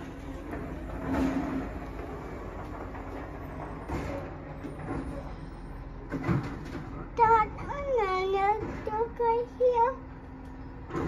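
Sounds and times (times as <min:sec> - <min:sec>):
garbage truck diesel engine humming: 0:00.0 - 0:11.0.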